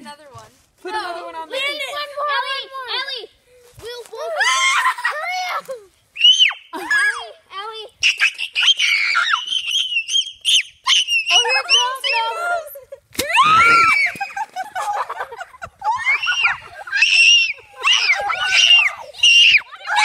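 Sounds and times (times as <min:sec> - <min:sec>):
children shrieking and screaming: 0:04.1 - 0:12.6, 0:13.2 - 0:20.0.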